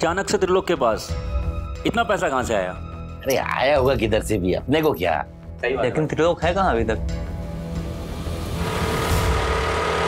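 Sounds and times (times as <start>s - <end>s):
car engine running: 8.6s - 10.0s.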